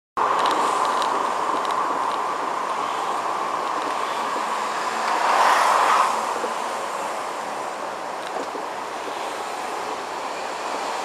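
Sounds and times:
road and tyre noise: 0:00.2 - 0:11.0.

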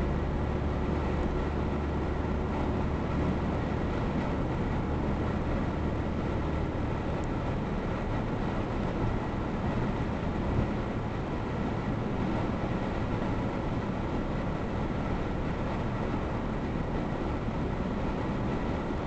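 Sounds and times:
car tyre and engine noise: 0:00.0 - 0:19.0.

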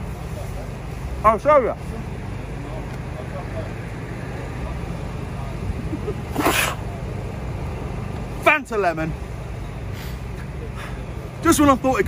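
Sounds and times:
car park background rumble: 0:00.0 - 0:12.0.

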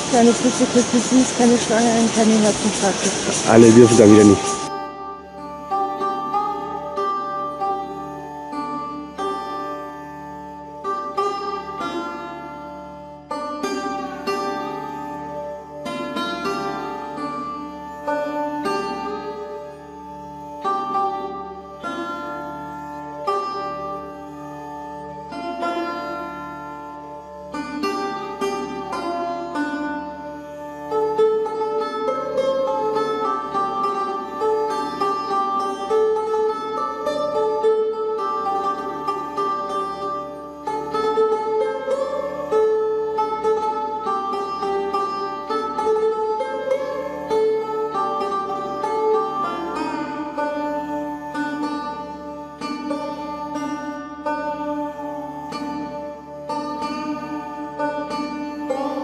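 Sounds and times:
plucked string melody: 0:00.0 - 0:59.0.

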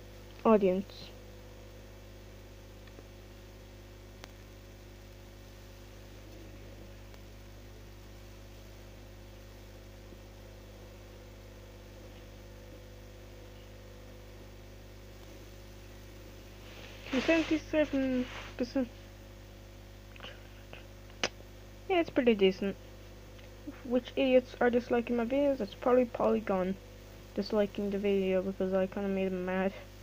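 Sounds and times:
low background hum with hiss: 0:00.0 - 0:30.0.

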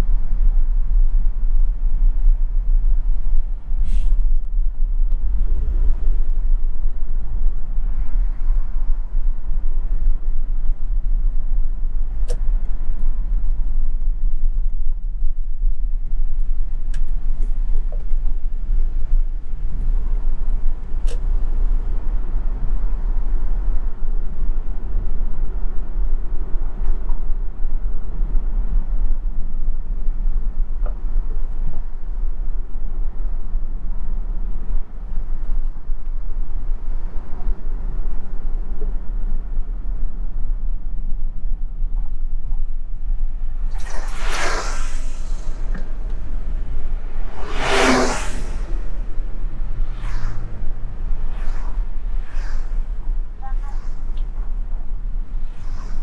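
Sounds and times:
road and engine rumble: 0:00.0 - 0:56.0
vehicles whooshing past: 0:43.2 - 0:56.0.

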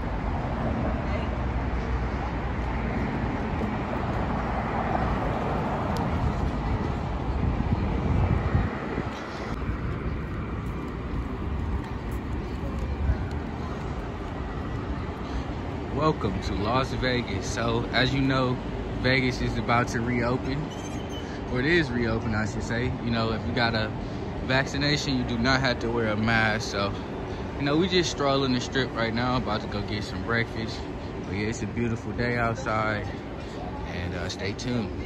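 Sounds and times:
traffic noise with low rumble: 0:00.0 - 0:35.0.

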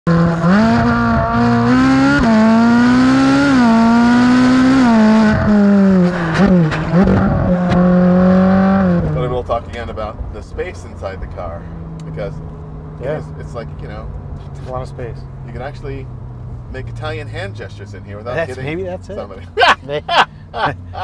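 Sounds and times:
car engine exhaust shifting gears: 0:00.1 - 0:21.0.

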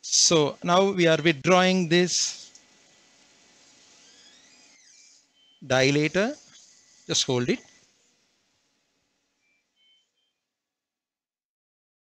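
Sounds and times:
faint high sliding tones: 0:03.4 - 0:08.3, 0:09.3 - 0:10.4.

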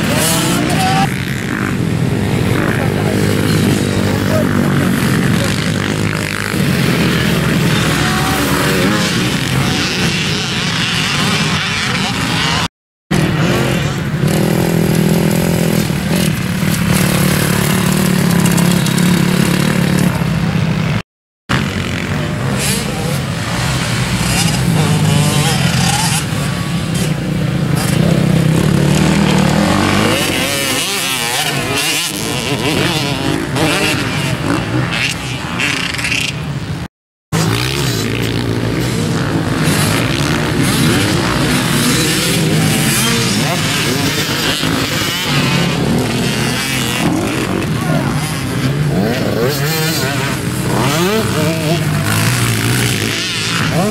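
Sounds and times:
dirt bike engines revving: 0:00.0 - 0:53.9.

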